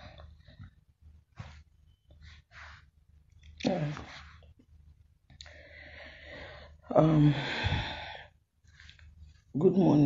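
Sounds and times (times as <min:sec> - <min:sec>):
woman breathing: 0:05.4 - 0:09.1.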